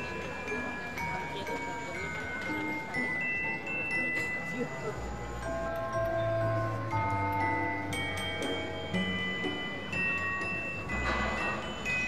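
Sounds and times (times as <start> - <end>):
bell-like notes playing a tune: 0.0 - 12.0
crowd murmur: 0.0 - 12.0.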